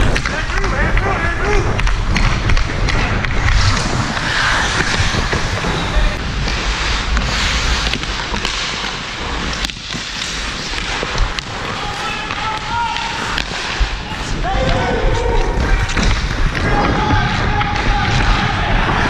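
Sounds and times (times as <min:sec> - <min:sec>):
hockey sticks clacking on puck: 0:00.0 - 0:03.8, 0:07.2 - 0:19.0
wind rumbling on microphone: 0:00.0 - 0:08.4
ice skate blades scraping ice: 0:02.0 - 0:16.6.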